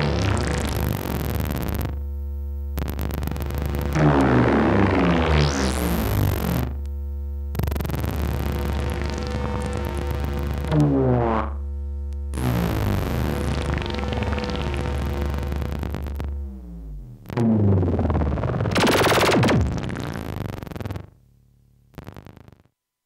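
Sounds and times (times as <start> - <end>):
synthesizer buzzing drone: 0.0 - 2.0, 2.8 - 6.9, 7.5 - 20.9
low hum: 2.2 - 20.1
loud burst of noise: 17.9 - 20.0.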